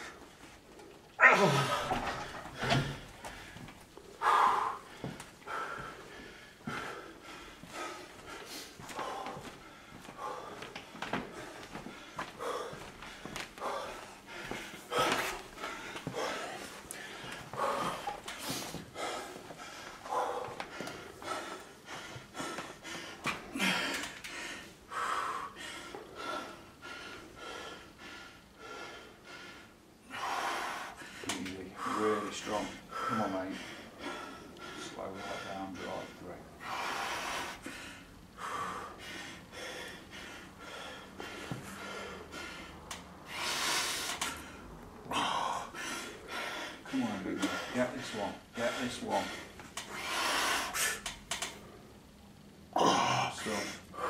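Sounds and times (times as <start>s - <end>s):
man breathing hard: 0.0s - 54.0s.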